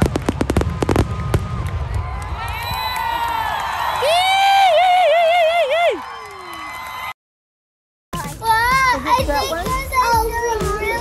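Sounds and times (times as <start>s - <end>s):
children shouting and playing: 8.2s - 11.0s
music with steady beat: 8.2s - 11.0s.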